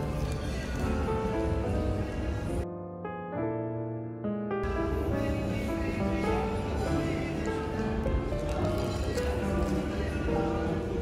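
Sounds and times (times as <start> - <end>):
slow gentle melody: 0.0 - 11.0.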